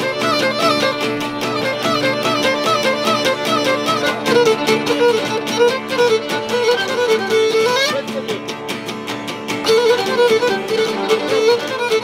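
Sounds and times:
lutes strumming steady rhythm: 0.0 - 12.0.

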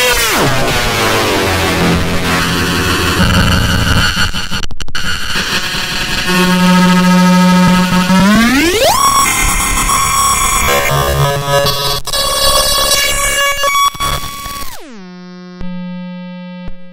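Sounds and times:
buzzing tone sweeping upward: 0.0 - 5.5, 6.2 - 12.0
high stuttering tones: 0.0 - 14.7
harsh glitchy noise: 0.0 - 15.0.

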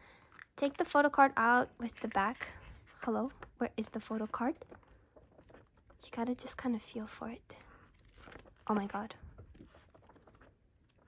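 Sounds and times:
pages flipping: 4.3 - 6.0, 7.8 - 11.0.

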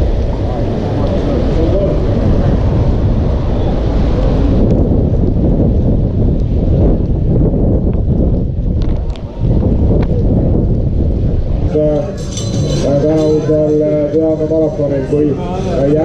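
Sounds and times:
wind buffeting microphone: 0.0 - 16.0
indistinct voices: 11.6 - 16.0.

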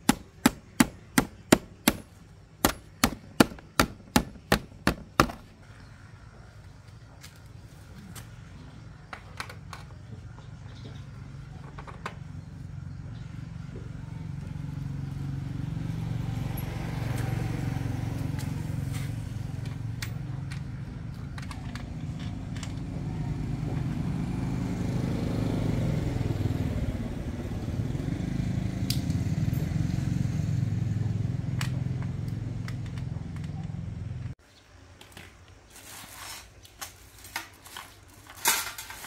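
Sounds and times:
hand tools clicking and tapping: 0.0 - 5.4
motorcycle engine running: 12.2 - 34.4.

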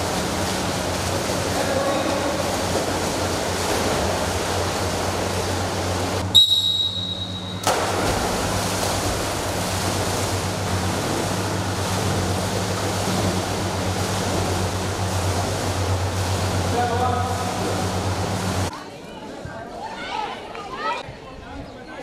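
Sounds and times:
low hum: 0.0 - 18.7
swimmer splashing: 0.0 - 18.7.

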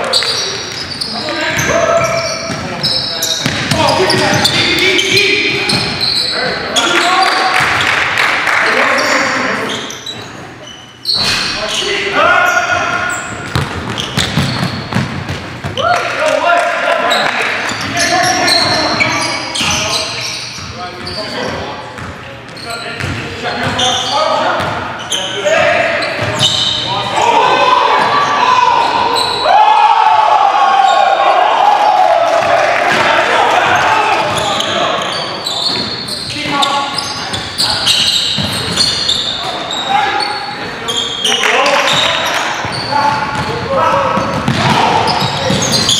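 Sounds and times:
sneakers squeaking: 0.0 - 8.2, 8.8 - 16.0, 17.0 - 29.5, 30.8 - 45.9
basketball bouncing on hardwood: 13.5 - 15.8
players shouting: 25.4 - 35.2, 38.7 - 45.9.

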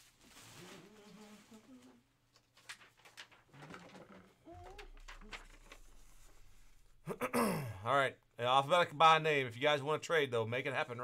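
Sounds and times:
paper rustling: 0.0 - 6.9.

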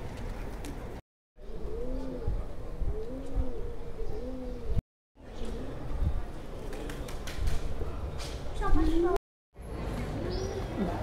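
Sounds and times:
pigeon cooing: 1.4 - 4.8
wind rumble on microphone: 5.8 - 6.4.

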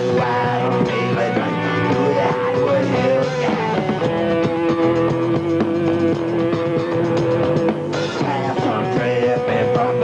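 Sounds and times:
funk-rock band playing: 0.0 - 10.0.

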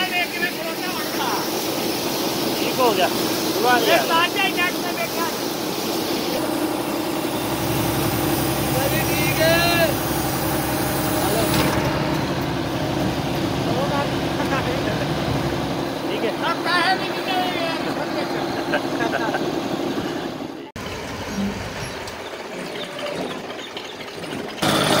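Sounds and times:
combine harvester engine running: 0.0 - 25.0
men's voices: 2.5 - 6.6, 13.5 - 20.5.

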